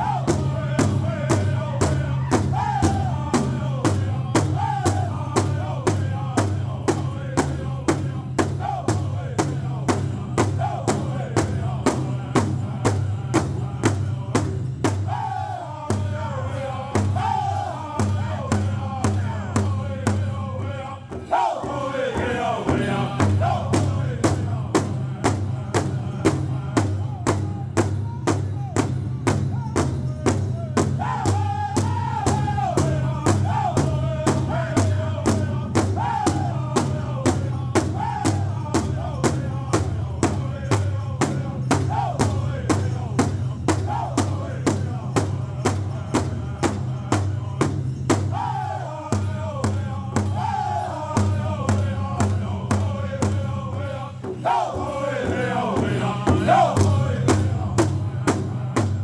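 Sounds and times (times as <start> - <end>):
group singing in unison: 0.0 - 28.0, 30.2 - 59.0.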